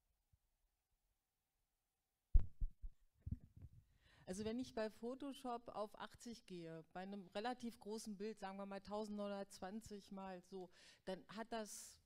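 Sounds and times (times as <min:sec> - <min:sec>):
microphone handling thumps: 0:02.3 - 0:03.8.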